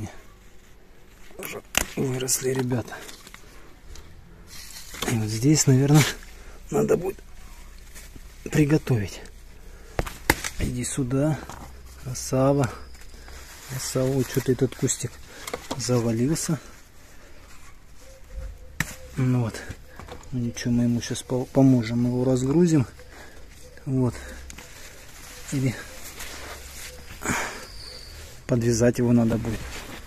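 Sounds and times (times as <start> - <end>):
rustling leaves and dry straw: 0.1 - 30.0.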